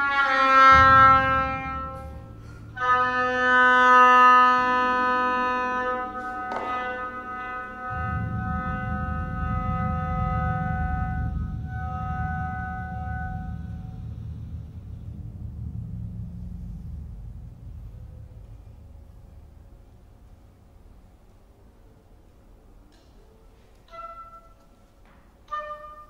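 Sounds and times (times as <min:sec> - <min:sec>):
oboe long reedy note: 0:00.0 - 0:19.7, 0:23.6 - 0:26.0
low bass drum roll: 0:00.5 - 0:21.6.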